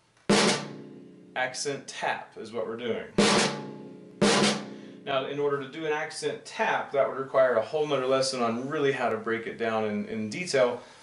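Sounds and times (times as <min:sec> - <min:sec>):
snare drum strokes: 0:00.3 - 0:01.1, 0:03.2 - 0:05.0.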